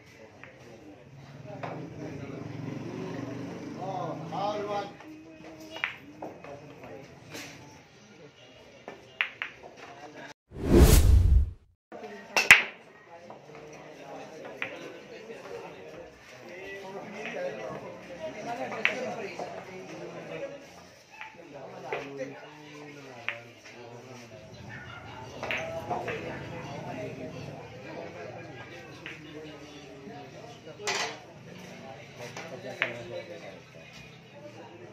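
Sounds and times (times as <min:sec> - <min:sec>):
whoosh transition effect: 0:10.6 - 0:11.7.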